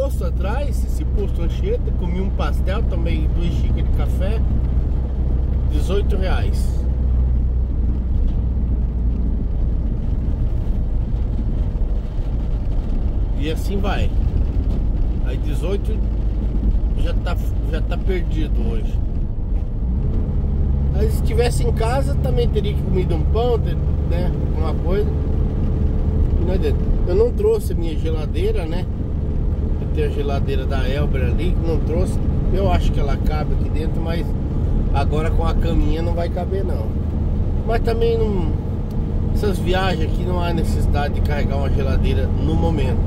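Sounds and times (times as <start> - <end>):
diesel engine rumble: 0.0 - 43.0
van driving at road speed: 0.0 - 43.0.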